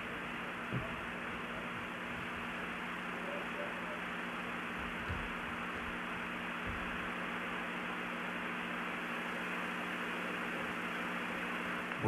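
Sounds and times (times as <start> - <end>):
broadcast hiss: 0.0 - 12.0
low electrical hum: 0.0 - 12.0.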